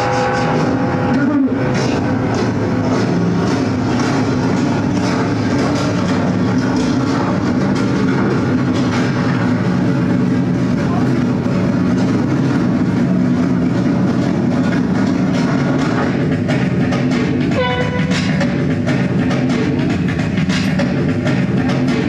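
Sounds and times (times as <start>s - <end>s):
ambient electronic drone music: 0.0s - 22.0s.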